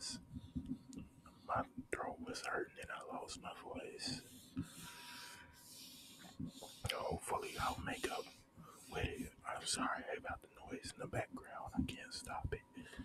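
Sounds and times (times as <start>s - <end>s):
close whispering: 0.0s - 13.0s.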